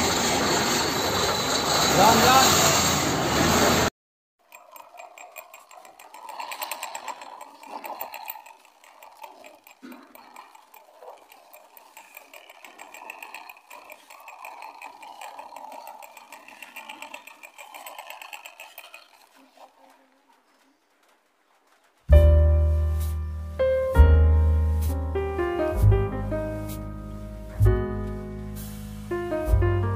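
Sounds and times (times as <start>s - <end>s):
toy motor and gears whirring: 4.4s - 21.1s.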